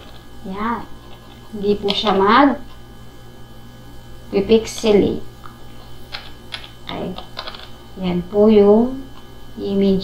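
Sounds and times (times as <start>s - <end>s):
low mains hum: 0.0s - 10.0s
keyboard keys clicking: 6.1s - 7.7s.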